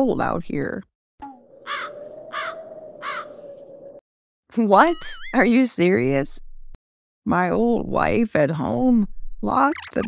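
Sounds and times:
cartoon crow cawing: 0:01.3 - 0:04.0.

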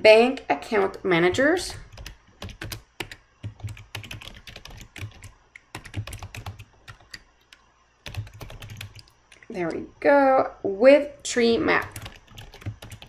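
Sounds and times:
computer keyboard typing: 0:00.7 - 0:09.5, 0:11.8 - 0:13.0.

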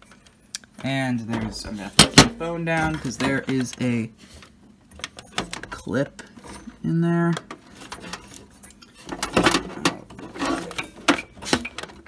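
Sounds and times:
clicks and scrapes in pc case: 0:07.5 - 0:12.0.

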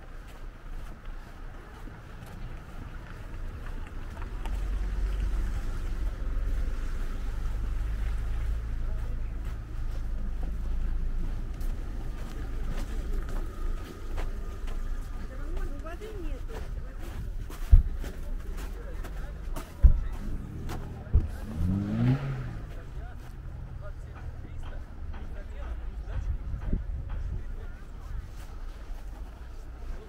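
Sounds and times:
faint distant voices: 0:00.0 - 0:30.0
footsteps on packed snow: 0:00.0 - 0:30.0
car engine idling: 0:02.6 - 0:16.8, 0:17.5 - 0:30.0.

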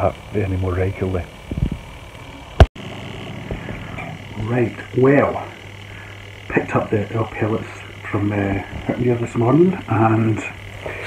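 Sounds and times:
faint indoor hum: 0:00.0 - 0:11.0.

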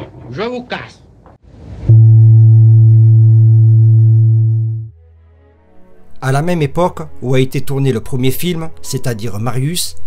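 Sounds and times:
ship's horn low blast: 0:01.8 - 0:05.9.

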